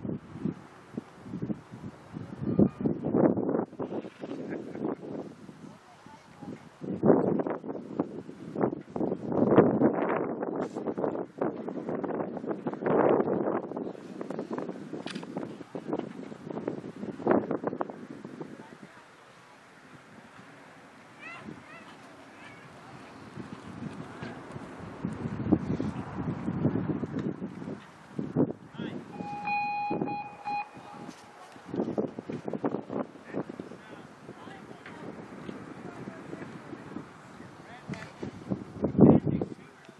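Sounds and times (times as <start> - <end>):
wind buffeting microphone: 0.0 - 39.9
electronic beep tone: 29.1 - 31.4.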